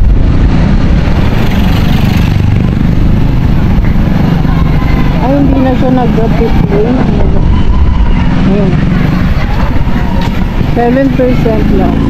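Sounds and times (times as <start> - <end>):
motor scooter running: 0.0 - 12.0
wind buffeting microphone: 0.0 - 12.0.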